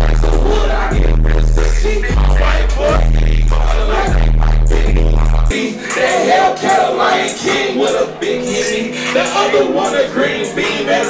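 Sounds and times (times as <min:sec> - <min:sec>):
hip hop beat with deep bass: 0:00.0 - 0:11.0
person rapping: 0:00.0 - 0:11.0.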